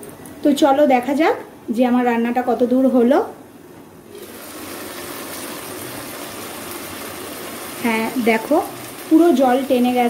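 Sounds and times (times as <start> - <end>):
curry sizzling in oil: 4.1 - 10.0.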